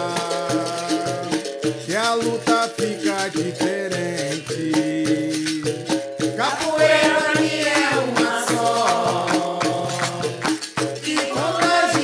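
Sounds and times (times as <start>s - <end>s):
person singing: 0.0s - 5.8s, 6.4s - 12.0s
berimbau: 0.0s - 12.0s
hand percussion: 0.0s - 12.0s
shaken rattle: 0.0s - 12.0s.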